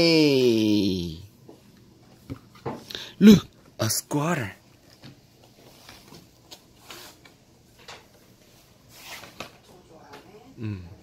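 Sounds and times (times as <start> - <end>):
cardboard book pages turning: 4.8 - 7.4, 8.8 - 9.7.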